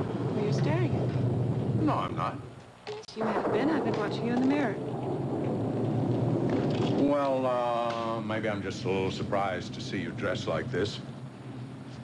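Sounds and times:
low rumble: 0.0 - 2.5, 3.2 - 11.9
rain falling: 3.3 - 11.1.

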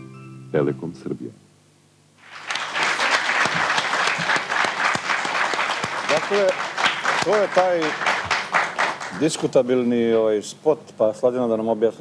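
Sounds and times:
audience applauding: 2.2 - 9.6.

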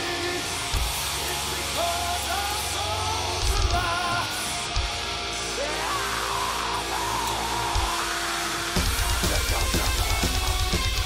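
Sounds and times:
distorted electric guitar chord: 7.6 - 11.0
fast kick-drum strokes: 8.8 - 11.0.

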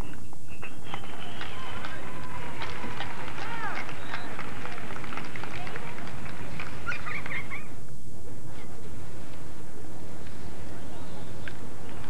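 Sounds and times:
steady noisy background: 0.0 - 12.0
distant shouts and calls: 0.6 - 7.8.

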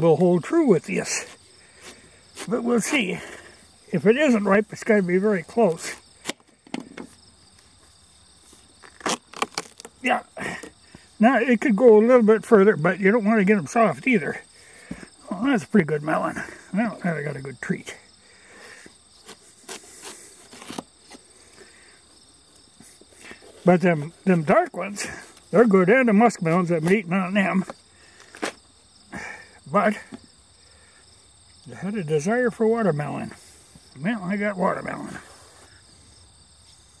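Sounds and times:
insects trilling: 0.0 - 37.0
knife cracking watermelon rind: 8.8 - 9.9.

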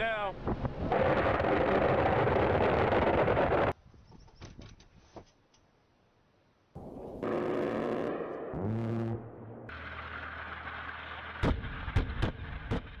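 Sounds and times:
rumbling noise: 0.3 - 3.8
rising hum: 6.8 - 12.6.

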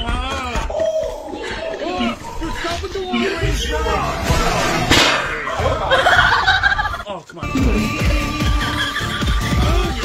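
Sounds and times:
voices: 0.0 - 10.0
sharp crack: 4.8 - 5.5
music: 7.4 - 10.0.

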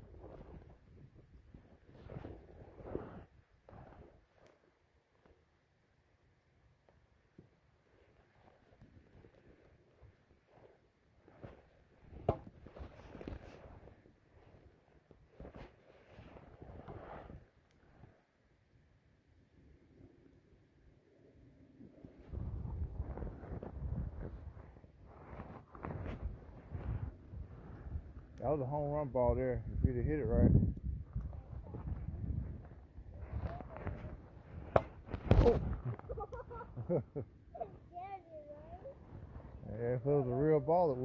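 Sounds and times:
wind rumble on microphone: 22.2 - 36.8.

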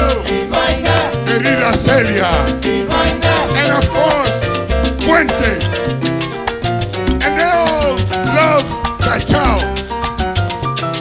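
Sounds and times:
salsa band playing: 0.0 - 11.0.

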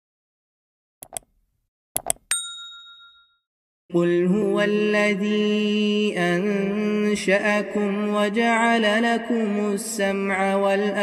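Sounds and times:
animation clicks: 1.0 - 1.4, 2.0 - 2.3
bell ding ringing: 2.2 - 3.4.

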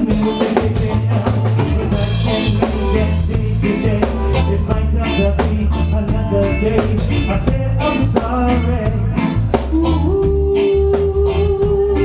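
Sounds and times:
heavy bass line: 0.0 - 12.0
live reggae band: 0.0 - 12.0.

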